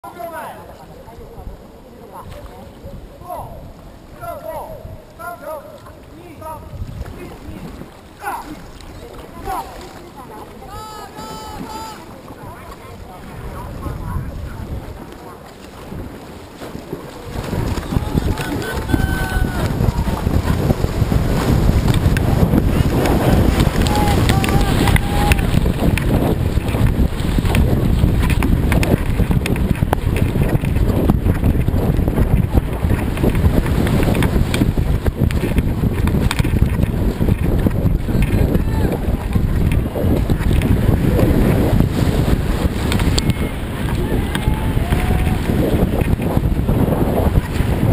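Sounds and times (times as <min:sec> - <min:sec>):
paddle splashing water: 0:00.0 - 0:47.9
wind buffeting microphone: 0:00.5 - 0:47.9.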